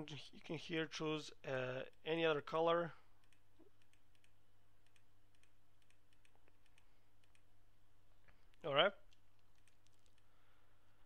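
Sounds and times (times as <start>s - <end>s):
low electrical hum: 0.0s - 11.0s
computer mouse clicks: 3.2s - 7.5s, 8.3s - 10.3s.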